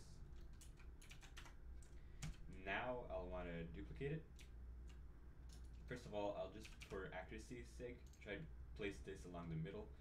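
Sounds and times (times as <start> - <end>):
computer keyboard key clicks: 0.4 - 2.4.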